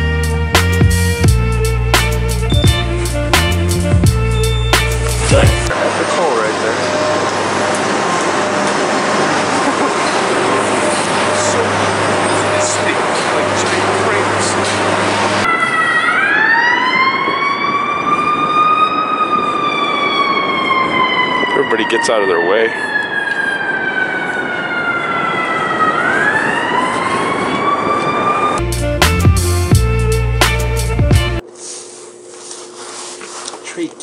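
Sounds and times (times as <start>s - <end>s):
background music: 0.0s - 5.7s, 28.6s - 31.4s
city street traffic noise: 0.0s - 34.0s
ambulance siren wailing: 2.3s - 28.6s.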